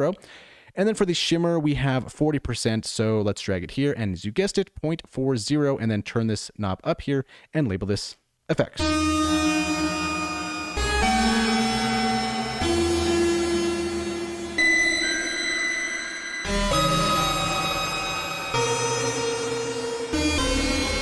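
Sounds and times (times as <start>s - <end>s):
dissonant synth chords: 8.8s - 21.0s.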